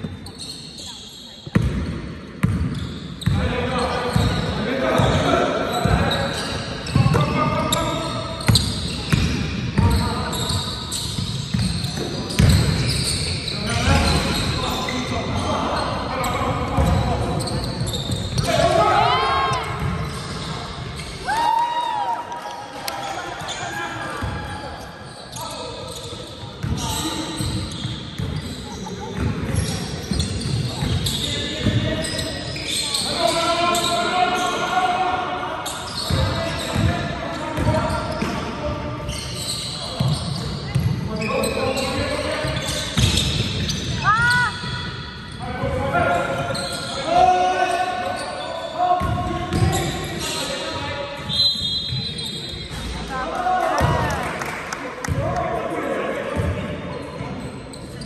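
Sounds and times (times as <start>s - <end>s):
sneaker squeaks: 0.0s - 21.9s, 22.8s - 54.1s, 56.3s - 58.0s
basketball bouncing on floor: 1.5s - 3.4s, 11.2s - 12.8s
players shouting in hall: 21.2s - 22.5s.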